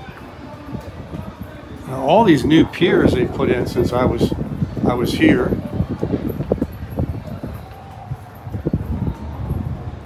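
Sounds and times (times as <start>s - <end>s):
footsteps: 0.0s - 10.0s
wind rumbling on microphone: 0.0s - 10.0s.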